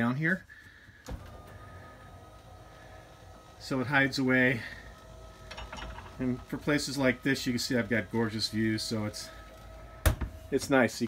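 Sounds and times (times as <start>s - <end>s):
electric motor whirring: 1.0s - 10.8s.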